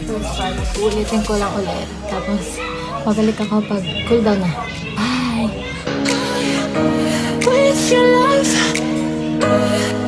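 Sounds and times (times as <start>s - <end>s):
woman speaking: 0.0s - 5.6s
background music: 0.0s - 10.0s.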